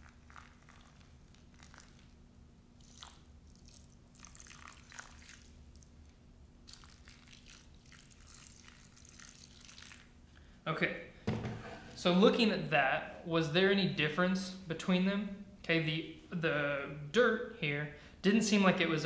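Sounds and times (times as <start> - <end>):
low steady hum: 0.0 - 19.0
water trickling onto dirt and rocks: 2.8 - 5.9, 6.7 - 10.1.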